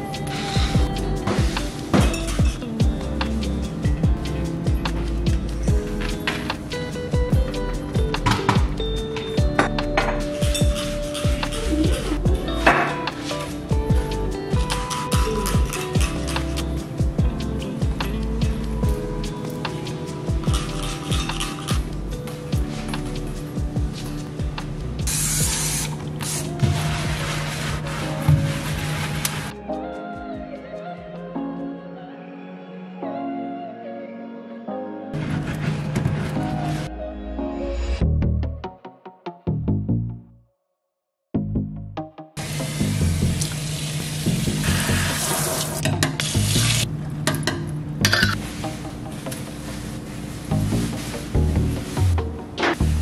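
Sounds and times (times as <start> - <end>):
background music: 0.0 - 40.5, 41.4 - 53.0
spray bottle hissing: 25.1 - 27.3
faucet water running into steel sink: 42.4 - 46.8.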